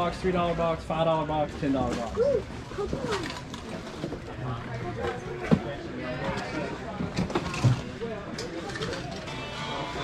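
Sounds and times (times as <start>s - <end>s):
indistinct background talk: 0.0s - 10.0s.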